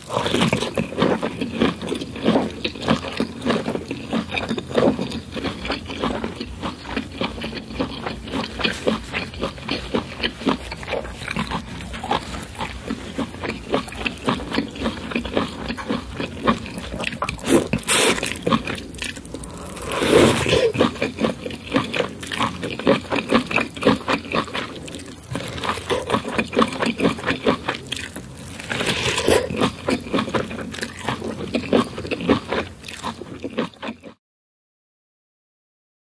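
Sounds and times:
wet chewing and lip-smacking: 0.0 - 34.2
crunching bite into corn cob: 27.8 - 29.8.

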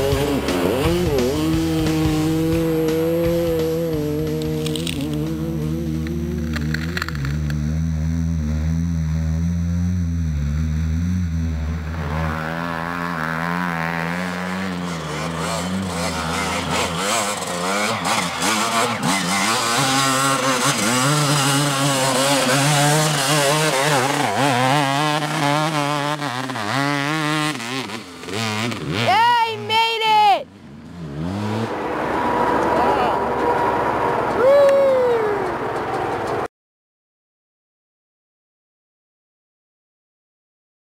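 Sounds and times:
dirt bike engine revving: 0.0 - 34.4.

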